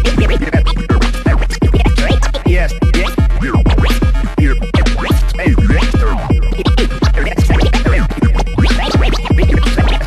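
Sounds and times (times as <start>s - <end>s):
electro beat with deep bass: 0.0s - 10.0s
vinyl record scratching: 0.0s - 10.0s.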